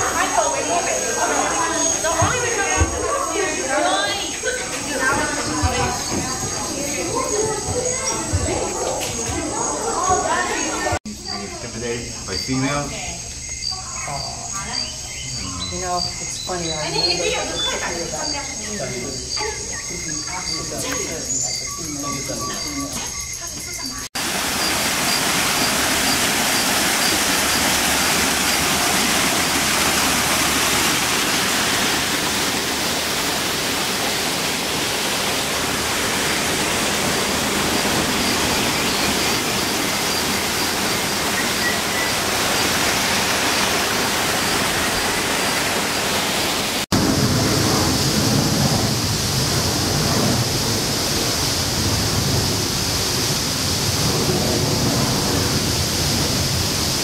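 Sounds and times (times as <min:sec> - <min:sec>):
waterfall rushing and splashing: 0:24.1 - 0:57.0
rushing noise with low rumble: 0:46.9 - 0:57.0.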